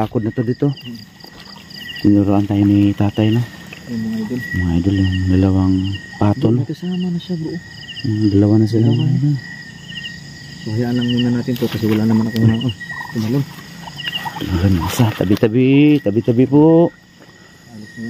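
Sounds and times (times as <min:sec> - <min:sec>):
crickets chirping: 0:00.0 - 0:18.0.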